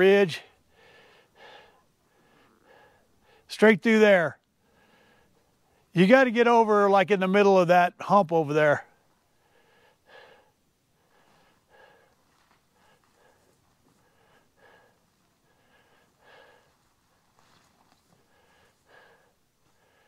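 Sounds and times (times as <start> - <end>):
faint regular breathing: 0.1 - 3.6, 4.4 - 6.0, 8.8 - 20.0.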